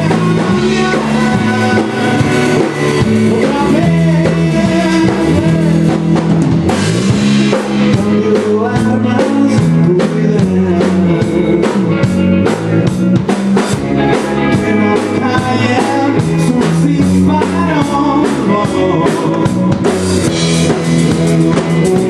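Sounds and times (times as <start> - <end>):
rock band playing: 0.0 - 22.0.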